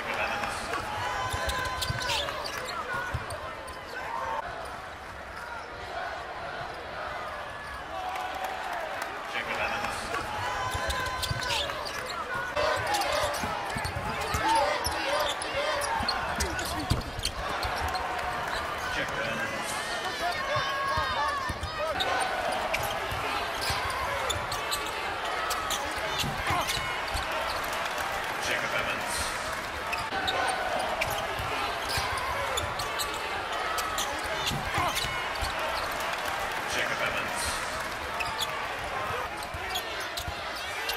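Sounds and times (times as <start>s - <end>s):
murmur of crowd voices: 0.0s - 40.9s
sneaker squeaks: 1.2s - 4.0s, 10.6s - 18.9s, 20.3s - 27.7s, 29.9s - 36.2s, 38.2s - 38.7s, 39.4s - 40.9s.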